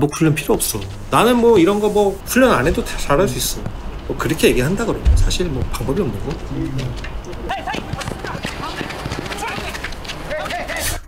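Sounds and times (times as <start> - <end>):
players shouting in distance: 6.8 - 11.0.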